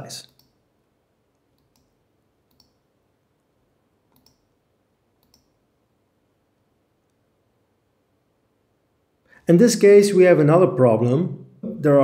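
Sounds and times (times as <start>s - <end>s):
computer mouse clicks: 0.2s - 0.6s, 1.3s - 2.8s, 4.1s - 4.5s, 5.2s - 5.6s.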